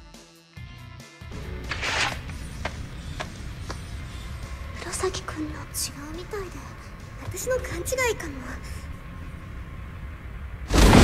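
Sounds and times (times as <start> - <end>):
dramatic soundtrack music: 1.2 - 11.0
low rumble: 2.4 - 11.0.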